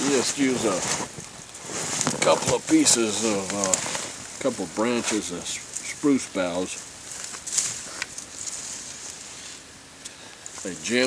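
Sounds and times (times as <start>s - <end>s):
spruce boughs rustling: 0.0s - 11.0s.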